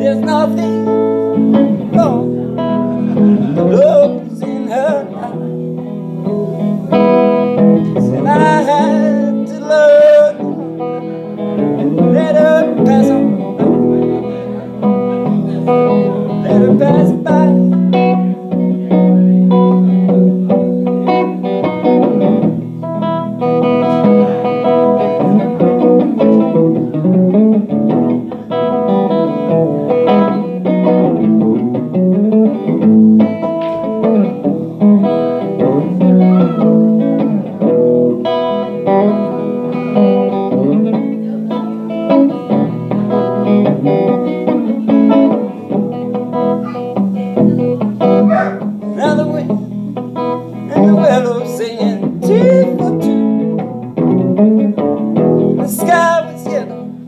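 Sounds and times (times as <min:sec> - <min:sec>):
electric guitar playing: 0:00.0 - 0:57.0.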